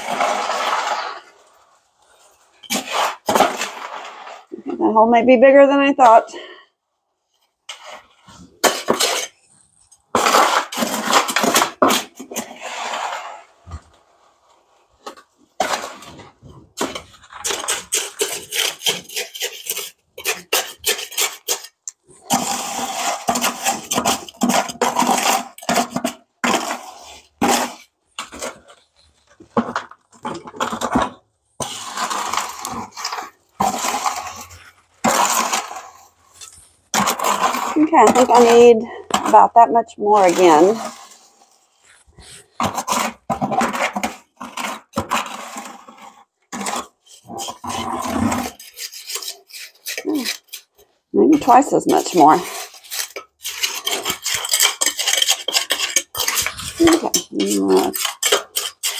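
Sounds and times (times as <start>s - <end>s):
trowel scraping concrete in bucket: 0.0s - 6.6s, 7.6s - 58.9s.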